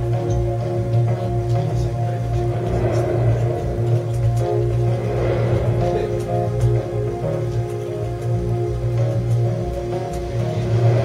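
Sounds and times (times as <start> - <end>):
background music with low chords: 0.0 - 11.0.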